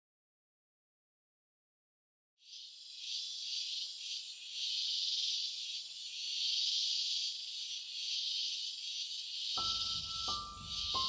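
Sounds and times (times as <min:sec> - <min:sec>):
cicadas buzzing: 0:02.4 - 0:11.0.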